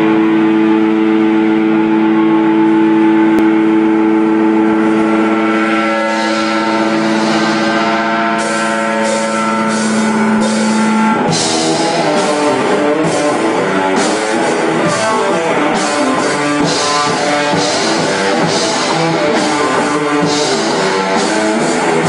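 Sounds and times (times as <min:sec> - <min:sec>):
distorted electric guitar chord: 0:00.0 - 0:22.0.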